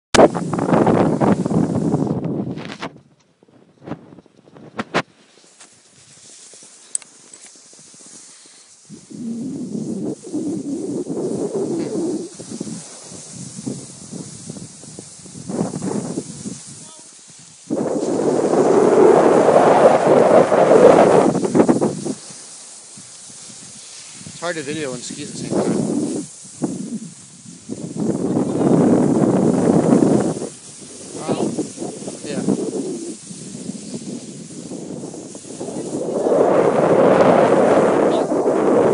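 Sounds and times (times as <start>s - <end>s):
wind rushing on microphone: 0.2s - 5.2s, 7.7s - 38.9s
skis scraping over snow: 4.2s - 38.9s.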